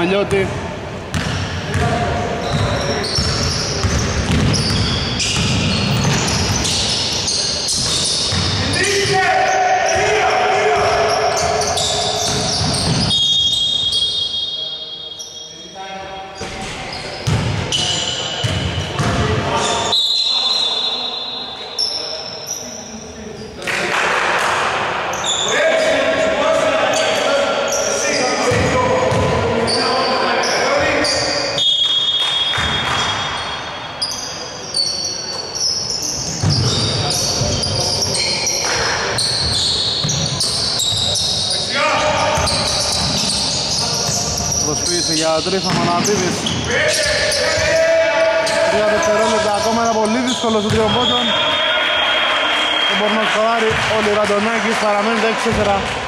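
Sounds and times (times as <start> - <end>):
voices echoing in hall: 0.0 - 56.0
basketball bouncing on wooden floor: 2.5 - 6.6, 7.8 - 8.6, 12.2 - 13.1.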